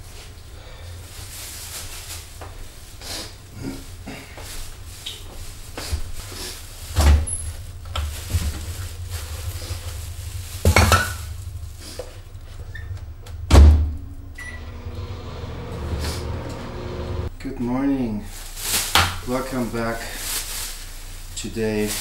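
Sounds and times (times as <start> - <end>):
low hum: 6.8 - 18.1
kitchen items knocking: 7.9 - 11.6.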